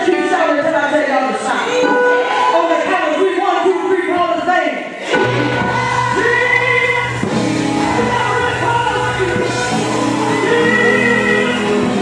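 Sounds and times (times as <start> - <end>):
congregation singing gospel: 1.5 - 12.0
instrumental backing with bass notes: 5.1 - 12.0.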